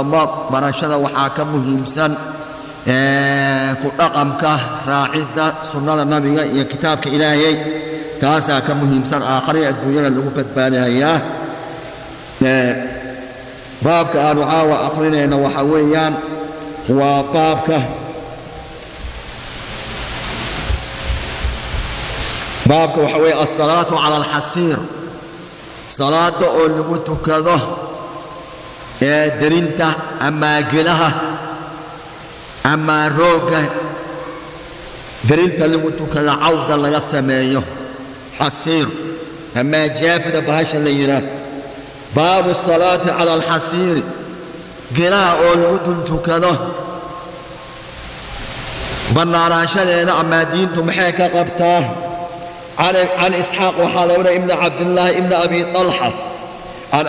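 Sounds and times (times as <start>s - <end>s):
steady broadband hiss: 0.0s - 57.0s.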